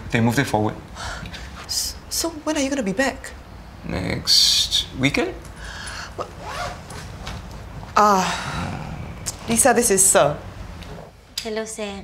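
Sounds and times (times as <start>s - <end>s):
zipper pulled along bag: 6.4s - 7.0s.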